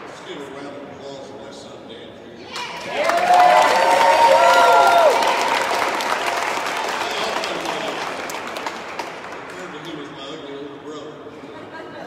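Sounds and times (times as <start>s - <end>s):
audience applauding: 2.6s - 10.2s.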